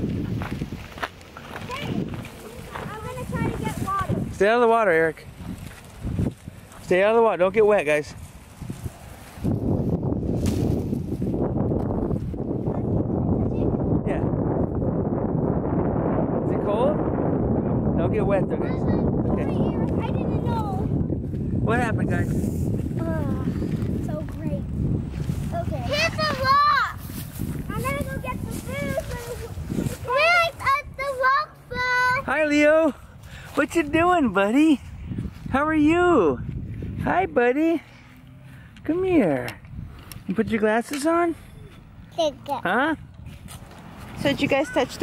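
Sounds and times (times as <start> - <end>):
wind buffeting microphone: 0.0 - 45.0.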